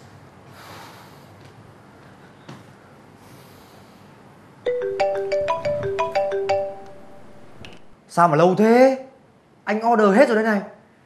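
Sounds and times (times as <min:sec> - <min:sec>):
phone ringtone melody: 0:04.7 - 0:07.9.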